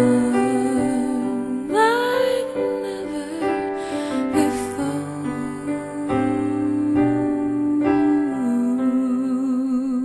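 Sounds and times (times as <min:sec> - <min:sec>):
piano chord: 0:00.0 - 0:09.8
woman singing a wordless note: 0:00.0 - 0:10.0.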